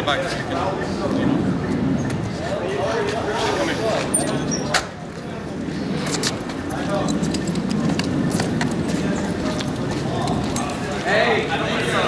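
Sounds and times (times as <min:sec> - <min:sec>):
steady low rumble: 0:00.4 - 0:03.4, 0:04.3 - 0:12.0.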